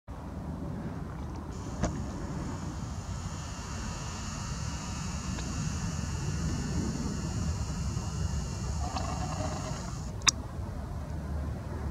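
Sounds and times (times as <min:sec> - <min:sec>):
camera zoom motor whine: 0:01.5 - 0:10.3.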